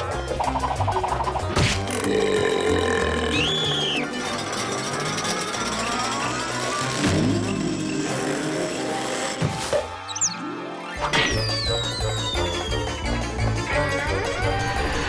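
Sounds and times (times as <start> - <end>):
cartoon music: 0.0 - 8.7, 10.1 - 15.0
comic mechanical sound effects: 0.2 - 12.9
whistle-like glide: 3.4 - 4.5, 10.1 - 13.5.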